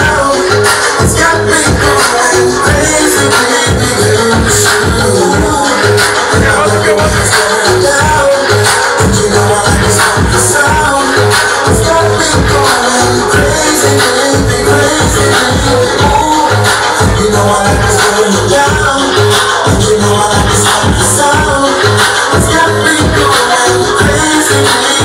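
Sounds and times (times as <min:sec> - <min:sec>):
loud dance music: 0:00.0 - 0:25.0.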